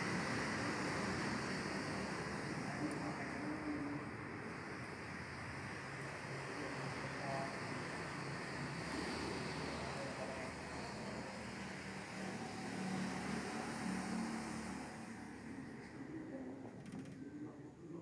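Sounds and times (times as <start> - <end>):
room air hiss: 0.0 - 15.8
faint indistinct voices: 2.4 - 14.3, 15.4 - 18.0.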